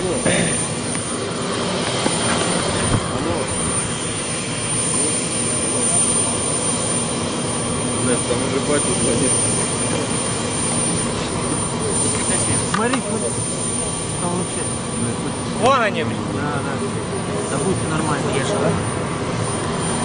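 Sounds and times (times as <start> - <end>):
jet engine noise: 0.0 - 20.0.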